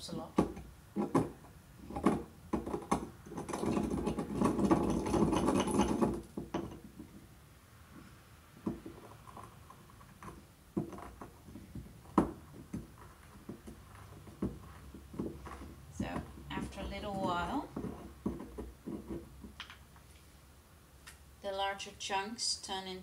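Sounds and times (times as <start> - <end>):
pestle grinding resin in mortar: 0.3 - 7.3, 8.0 - 19.6.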